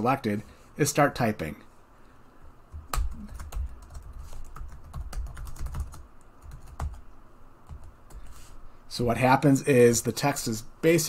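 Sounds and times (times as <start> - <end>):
keyboard typing: 2.7 - 7.0, 7.6 - 8.3.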